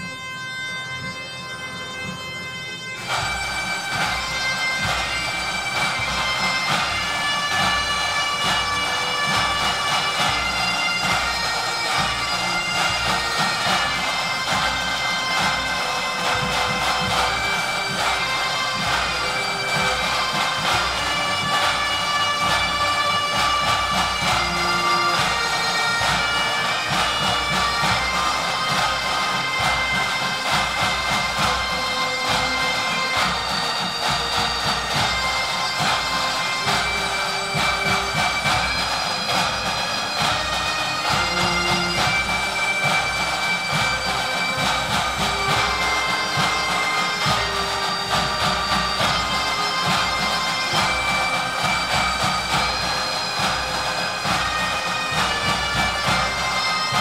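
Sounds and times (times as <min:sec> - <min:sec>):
bagpipes playing melody: 0:00.0 - 0:57.0
snare drums: 0:00.0 - 0:57.0.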